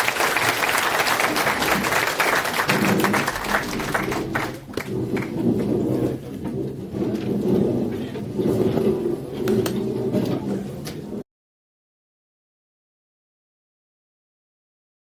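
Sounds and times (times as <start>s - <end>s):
audience applauding: 0.0s - 5.7s.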